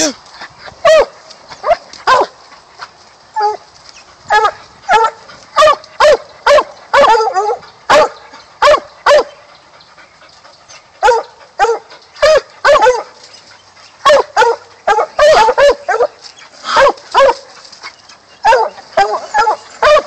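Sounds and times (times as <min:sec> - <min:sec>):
dog barking: 0:00.8 - 0:02.3, 0:04.3 - 0:09.3, 0:11.0 - 0:13.1, 0:14.0 - 0:17.4, 0:18.4 - 0:20.0.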